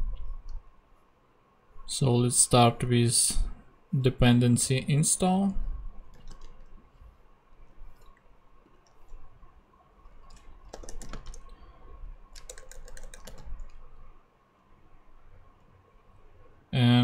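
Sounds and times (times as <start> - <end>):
keyboard key presses: 6.1 - 6.7, 10.1 - 11.6, 12.3 - 13.8.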